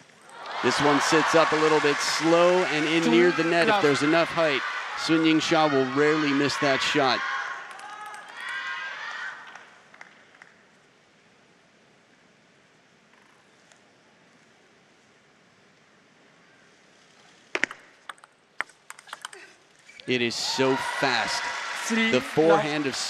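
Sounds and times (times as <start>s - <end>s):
crowd voices: 0.3s - 7.2s, 20.1s - 23.0s.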